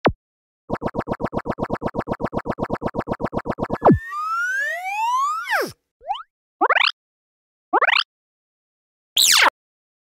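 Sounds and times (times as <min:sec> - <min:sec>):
short rising chirps: 0:03.7 - 0:05.8
rising whistling glides: 0:03.8 - 0:05.7
quick falling swoop: 0:03.8 - 0:05.8.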